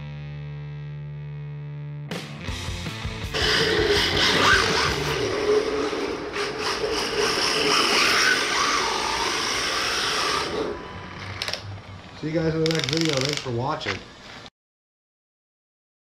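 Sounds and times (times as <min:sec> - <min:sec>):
electric motor whining: 0:03.3 - 0:13.5.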